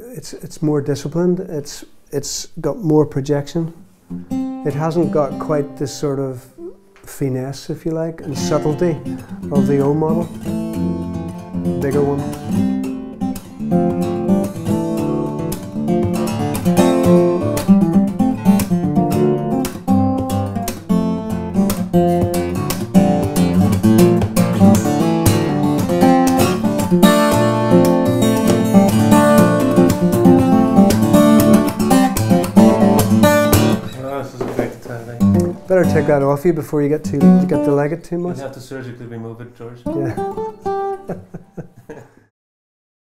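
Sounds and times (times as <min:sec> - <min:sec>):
fingerstyle acoustic guitar: 0:03.8 - 0:06.0, 0:08.2 - 0:38.4, 0:39.8 - 0:41.8.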